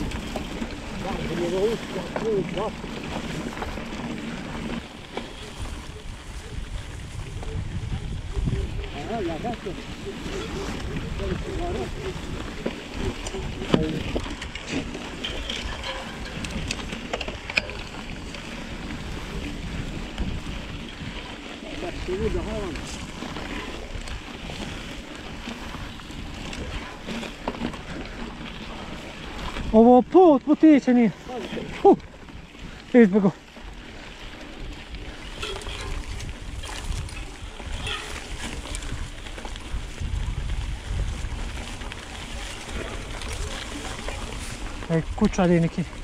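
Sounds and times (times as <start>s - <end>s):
bike rolling through dry grass: 0.0s - 46.0s
wind rumble on microphone: 0.0s - 46.0s
clicks and rattles: 13.2s - 18.4s.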